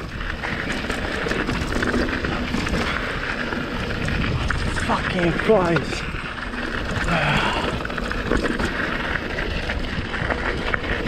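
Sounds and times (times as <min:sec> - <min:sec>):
bike frame rattle: 0:00.0 - 0:11.0
bike tyre rumble: 0:00.0 - 0:11.0
wind on microphone: 0:00.0 - 0:11.0.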